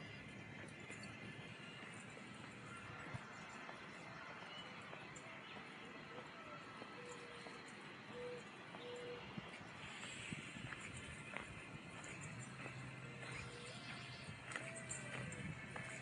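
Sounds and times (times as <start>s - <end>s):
light footsteps on path: 0.0s - 16.0s.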